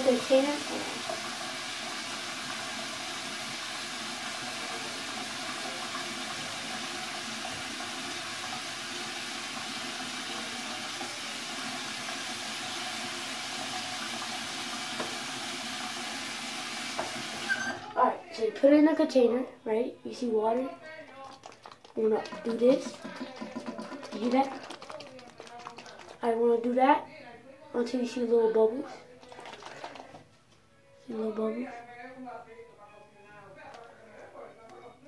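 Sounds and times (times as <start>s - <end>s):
tap water pouring into sink: 0.0s - 17.7s, 21.1s - 26.4s, 29.1s - 30.2s.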